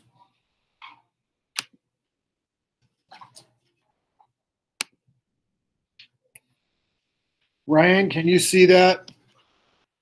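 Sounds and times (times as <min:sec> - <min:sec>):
computer mouse clicks: 0:01.5 - 0:01.8.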